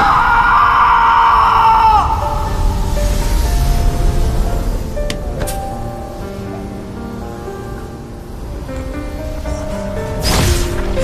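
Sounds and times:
man screaming: 0.0 - 2.6
dramatic background music: 0.0 - 11.0.

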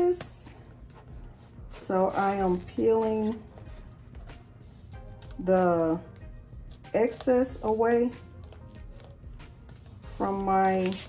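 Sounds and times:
soft background music: 0.0 - 11.0
sticker paper peeling crackle: 10.3 - 11.0.

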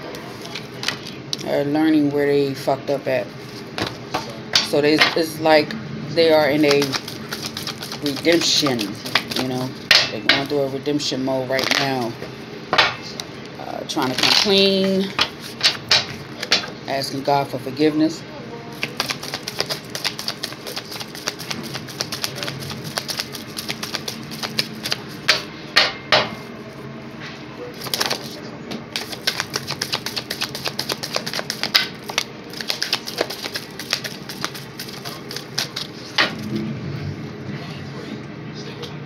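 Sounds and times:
deck of cards shuffling: 6.3 - 9.8, 14.0 - 15.8, 18.7 - 25.3, 27.8 - 28.4, 29.0 - 36.5.

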